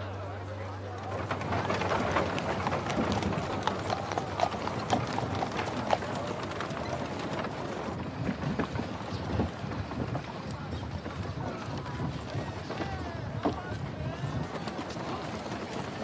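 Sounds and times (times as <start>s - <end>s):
indistinct crowd chatter: 0.0s - 16.0s.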